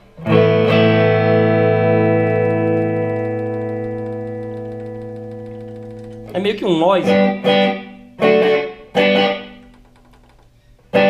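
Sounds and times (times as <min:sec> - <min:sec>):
electric guitar chord ringing: 0:00.0 - 0:09.7.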